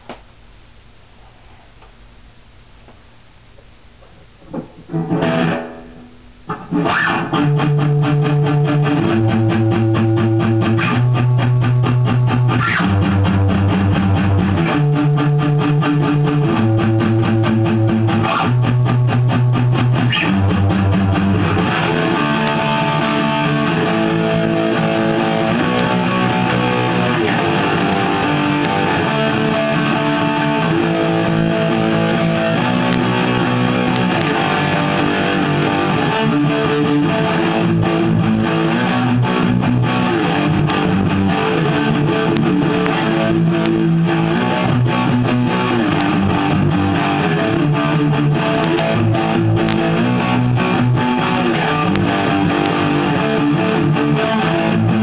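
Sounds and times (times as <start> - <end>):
electric guitar chords and riff: 4.5 - 55.0.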